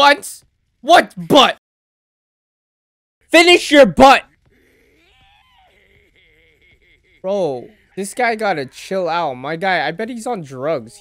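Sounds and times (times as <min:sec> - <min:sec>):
cartoon character laughing and shouting: 0:04.9 - 0:09.3.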